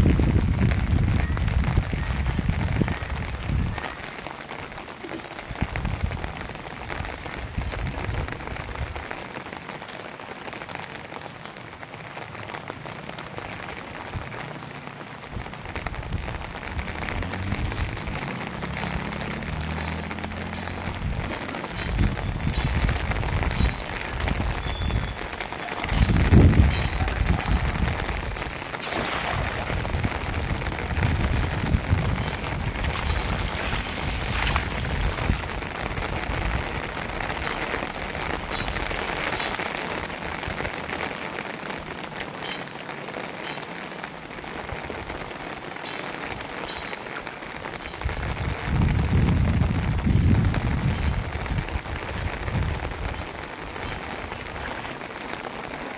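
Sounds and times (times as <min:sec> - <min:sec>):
wind rumble on microphone: 0:00.0 - 0:09.7, 0:15.2 - 0:42.2, 0:47.5 - 0:55.8
rain pattering on water and grass: 0:00.0 - 0:55.9
net splashing into water: 0:28.4 - 0:29.8, 0:32.8 - 0:35.5.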